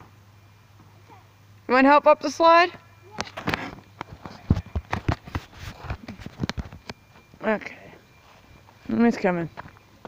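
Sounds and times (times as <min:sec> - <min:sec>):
knocks and scuffs: 0:03.2 - 0:07.3.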